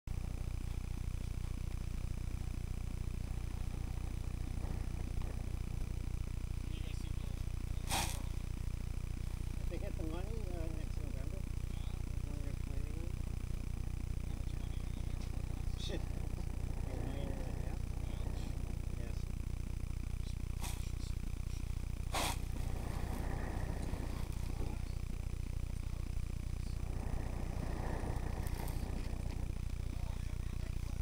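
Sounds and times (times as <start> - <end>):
steady low rumble: 0.1 - 31.0
faint voices talking: 3.4 - 31.0.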